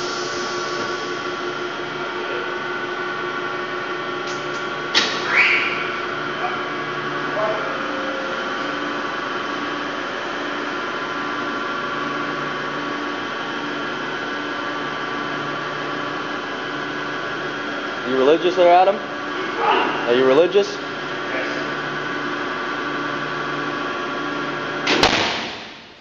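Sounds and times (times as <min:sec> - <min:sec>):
machine hum: 0:00.0 - 0:26.0.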